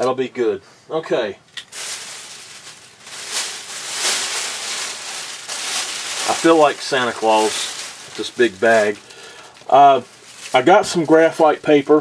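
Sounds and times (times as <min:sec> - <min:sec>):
shopping bag rustling: 0:01.6 - 0:12.0.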